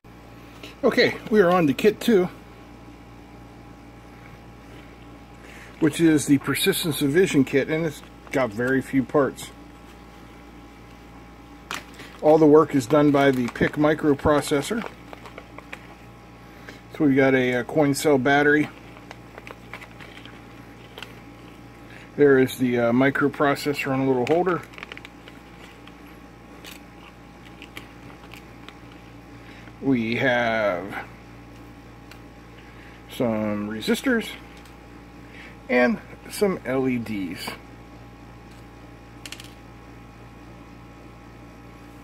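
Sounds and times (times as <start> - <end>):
steady low hum: 0.0 - 42.0
plastic bags rustling: 11.7 - 29.7.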